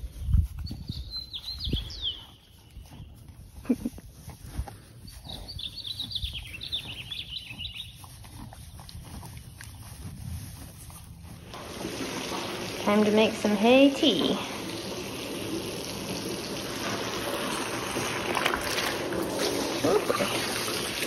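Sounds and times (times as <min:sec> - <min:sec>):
wind rumble on microphone: 0:00.0 - 0:07.9
songbird twittering: 0:00.6 - 0:02.6, 0:05.2 - 0:08.0.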